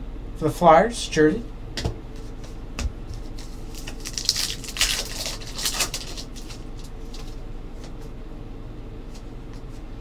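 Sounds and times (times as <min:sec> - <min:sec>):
foil wrapper crinkling and tearing: 0:03.3 - 0:07.4.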